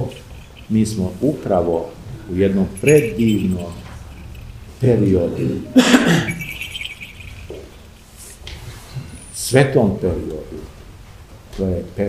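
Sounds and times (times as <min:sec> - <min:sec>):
faint high-pitched squeak: 0:00.0 - 0:01.3, 0:02.8 - 0:04.6, 0:06.2 - 0:09.4.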